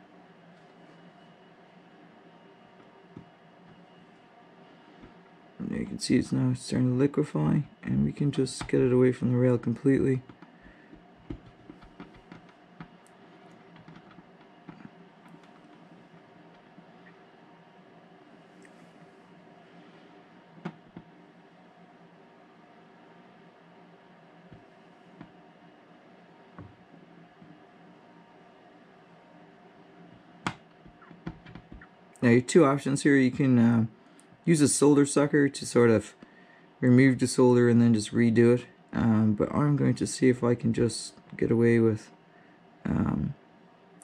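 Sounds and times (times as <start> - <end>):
faint electrical hum: 0.0 - 44.0.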